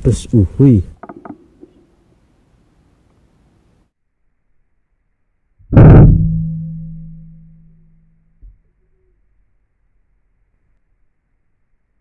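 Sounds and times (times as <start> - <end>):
air rifle shot boom: 5.8 - 6.6.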